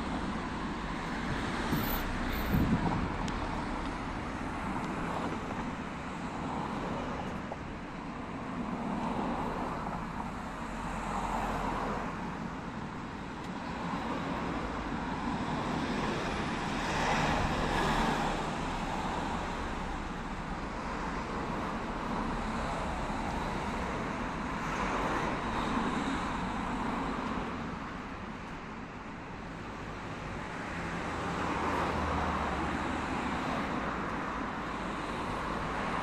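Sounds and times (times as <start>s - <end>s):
cars passing: 0.0s - 36.0s.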